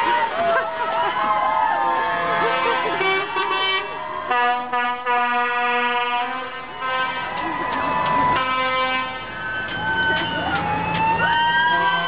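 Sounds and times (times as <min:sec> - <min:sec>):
truck horn honking: 0:01.8 - 0:07.4, 0:08.2 - 0:10.4
people shouting: 0:09.5 - 0:12.0.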